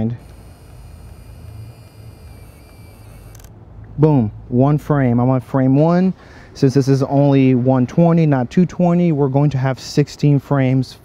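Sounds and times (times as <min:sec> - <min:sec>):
camera film-advance motor whirring: 0:00.0 - 0:03.5.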